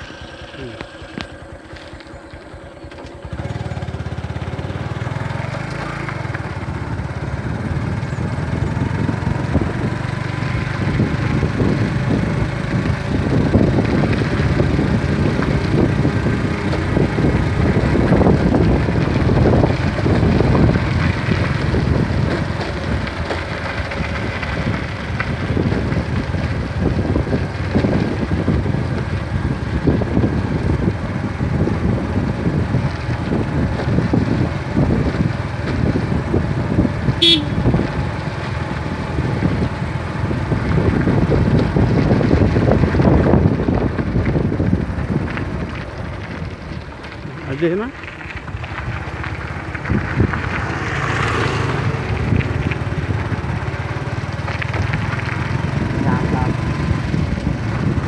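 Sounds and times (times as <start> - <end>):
motorcycle engine running: 0.0 - 58.0
wind noise on microphone: 6.1 - 58.0.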